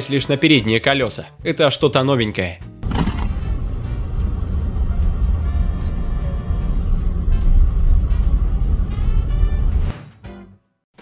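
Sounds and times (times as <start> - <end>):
faint background music: 0.0 - 9.9
car driving low rumble: 2.8 - 9.9.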